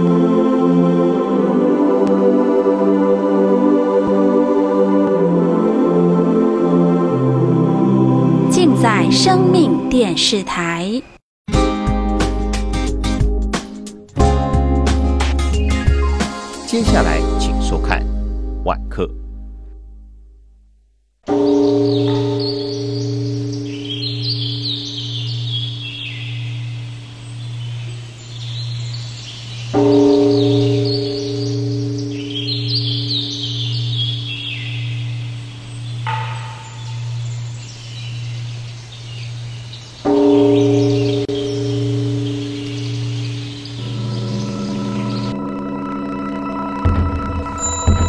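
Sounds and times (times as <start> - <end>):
soft music: 0.0 - 10.4, 11.5 - 20.2, 42.2 - 48.0
birds chirping: 15.4 - 17.8, 21.3 - 46.6
large temple bell ringing: 21.3 - 27.0, 29.7 - 38.6, 40.0 - 48.0.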